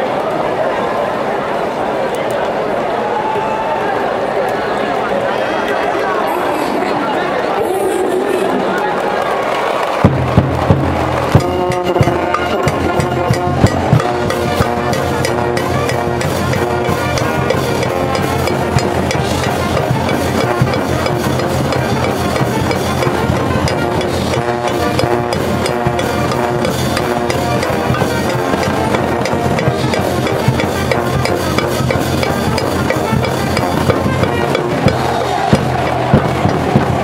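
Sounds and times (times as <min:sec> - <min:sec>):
cheering band brass and drums: 0:00.0 - 0:37.0
loud drum hits: 0:10.1 - 0:37.0.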